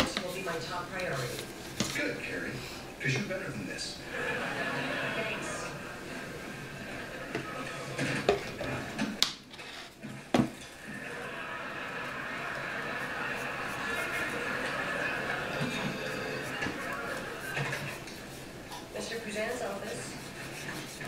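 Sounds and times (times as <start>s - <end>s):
television speech: 0.0s - 9.3s, 10.7s - 21.0s.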